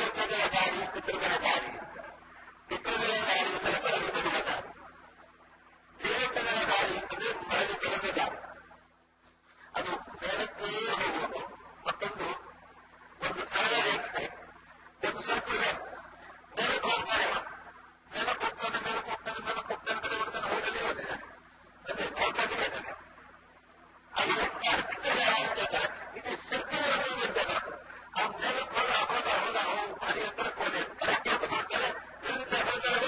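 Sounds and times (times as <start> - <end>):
man speaking: 0.0 - 4.8, 6.0 - 8.6, 9.6 - 12.6, 13.2 - 23.0, 24.2 - 33.0.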